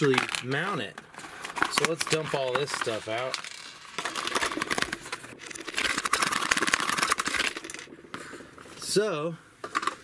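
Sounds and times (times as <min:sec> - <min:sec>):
rustling and rattling clicks: 0:00.0 - 0:08.0, 0:09.6 - 0:10.0.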